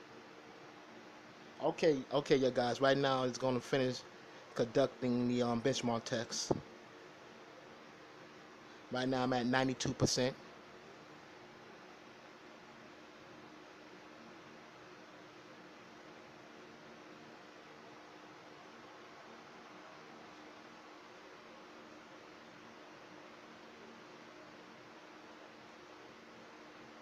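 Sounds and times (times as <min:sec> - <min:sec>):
faint hum: 0:00.0 - 0:27.0.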